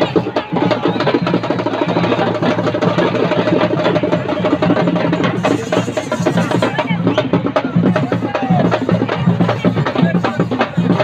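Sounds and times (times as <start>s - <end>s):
fast dense drumming: 0.0s - 11.0s.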